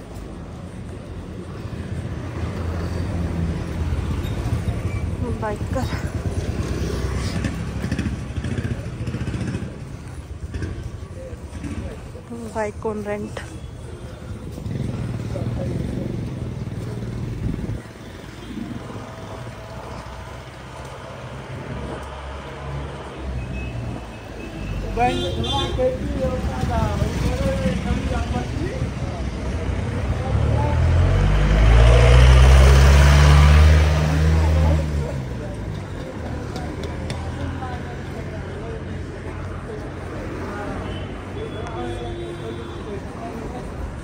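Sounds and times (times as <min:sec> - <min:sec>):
low traffic noise: 0:00.0 - 0:44.0
voices: 0:00.0 - 0:44.0
vehicle engine passing by: 0:02.4 - 0:12.0, 0:14.4 - 0:17.8, 0:26.1 - 0:40.8.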